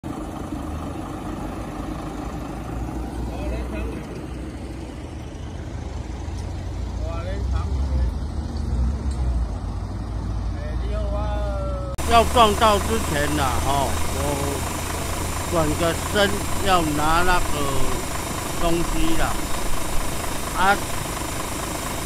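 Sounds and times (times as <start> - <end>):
vehicle engines running: 0.0 - 22.0.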